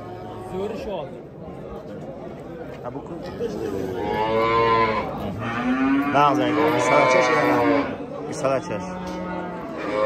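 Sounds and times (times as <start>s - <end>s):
cattle mooing: 3.9s - 8.0s, 8.8s - 10.0s.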